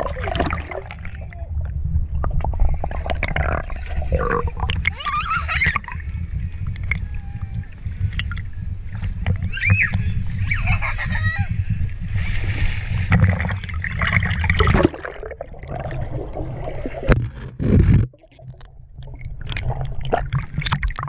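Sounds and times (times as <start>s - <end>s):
pool water sloshing and splashing: 0.0s - 1.4s, 12.1s - 21.0s
child squealing and shouting: 4.9s - 5.8s, 9.5s - 11.5s.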